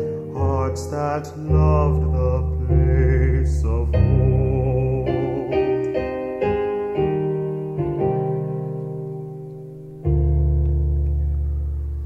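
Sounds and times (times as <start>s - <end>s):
man singing: 0.0s - 6.2s
instrumental accompaniment: 0.0s - 12.0s.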